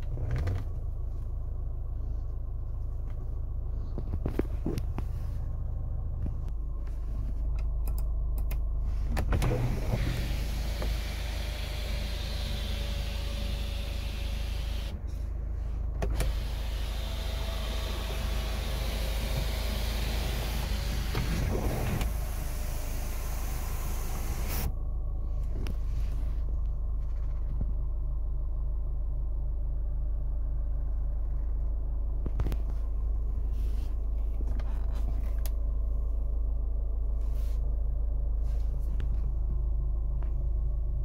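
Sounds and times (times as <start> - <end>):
sunroof motor whining: 8.9 - 15.2, 15.9 - 26.0.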